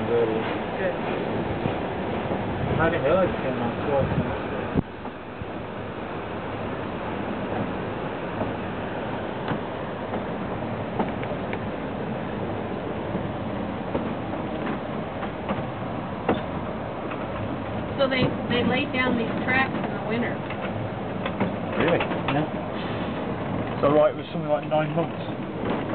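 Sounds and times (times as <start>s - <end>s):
train rumbling along track: 0.0s - 25.9s
wheels clicking on rails: 12.4s - 25.9s.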